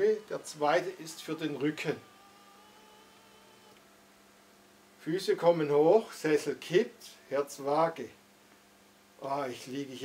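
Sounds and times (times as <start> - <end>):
recliner motor whining: 0.0 - 3.9.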